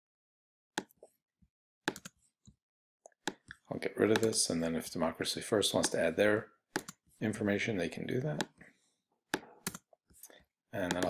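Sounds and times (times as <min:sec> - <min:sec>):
mouse and keyboard clicks: 0:01.9 - 0:02.1, 0:04.1 - 0:04.4.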